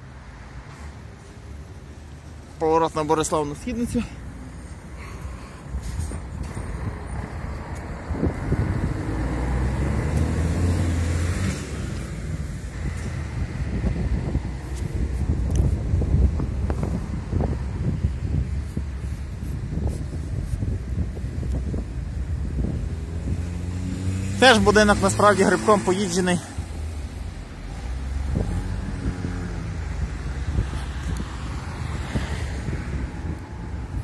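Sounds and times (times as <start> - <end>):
car passing by: 3.2 - 14.9, 22.6 - 34.0
wind buffeting microphone: 5.6 - 34.0.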